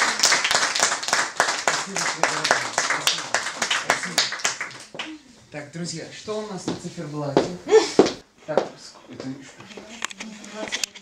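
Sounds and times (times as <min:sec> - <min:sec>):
small audience clapping: 0:00.0 - 0:05.2.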